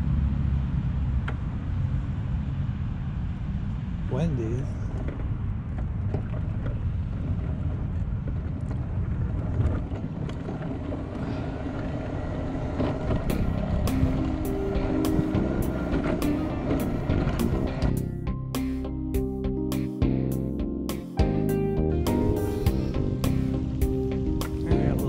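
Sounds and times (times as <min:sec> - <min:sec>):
wind on microphone: 0:04.8 - 0:18.1
power wheelchair motors rumbling: 0:04.9 - 0:18.4, 0:21.9 - 0:25.0
music with steady beat: 0:13.3 - 0:25.0.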